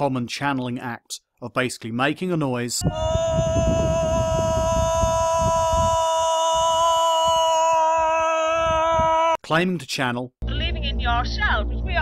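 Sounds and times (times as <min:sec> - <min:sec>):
wind rumble on microphone: 0:02.8 - 0:07.4, 0:08.0 - 0:09.2.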